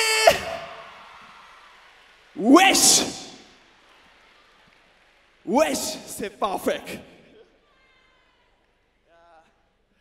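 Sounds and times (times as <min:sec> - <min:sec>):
man shouting through a pa: 0:00.0 - 0:00.6.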